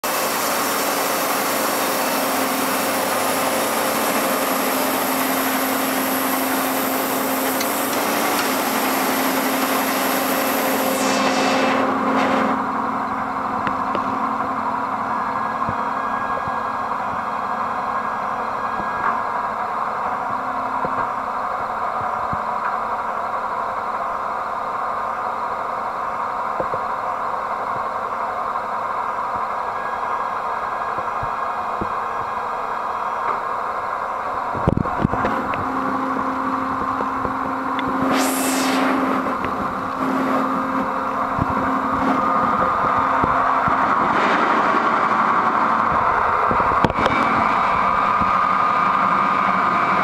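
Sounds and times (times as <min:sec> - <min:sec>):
machine mechanical hum: 0:00.0 - 0:50.0
high hiss: 0:00.1 - 0:12.0, 0:37.8 - 0:39.9.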